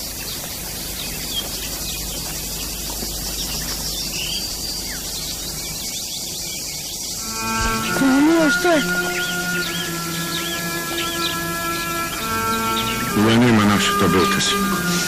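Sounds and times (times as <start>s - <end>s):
insects buzzing: 0.0s - 15.0s
low hum: 0.0s - 15.0s
sustained pitched tone: 7.1s - 15.0s.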